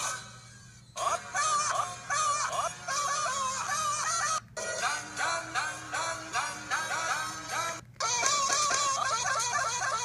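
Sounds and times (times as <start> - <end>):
commercial jingle with sung melody: 4.6 - 7.8.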